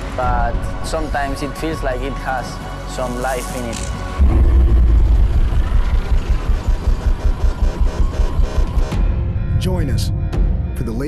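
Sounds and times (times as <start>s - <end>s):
motorcycle engine throbbing: 4.2s - 9.5s.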